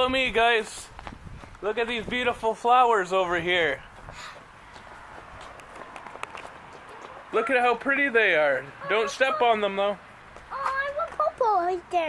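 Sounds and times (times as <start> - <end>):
faint outdoor background: 0.0 - 12.0
footsteps on brick paving: 0.9 - 2.5, 3.8 - 7.6, 10.2 - 11.4.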